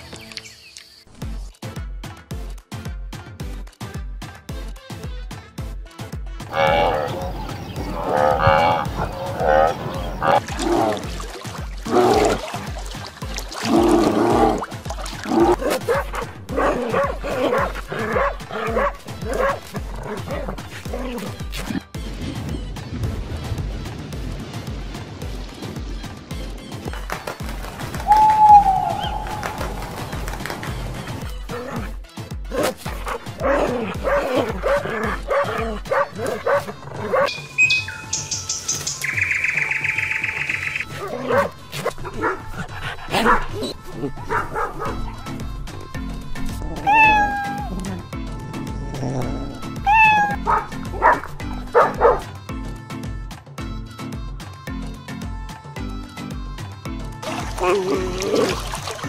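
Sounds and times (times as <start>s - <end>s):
background music with low beat: 1.1s - 39.6s, 40.4s - 58.2s
dogs yipping and barking: 6.6s - 11.0s, 15.3s - 21.5s, 31.5s - 38.8s, 40.0s - 45.4s, 46.6s - 48.0s, 49.2s - 52.3s
dog yelp: 32.6s - 37.3s, 40.9s - 42.5s, 46.8s - 47.7s, 49.8s - 52.2s.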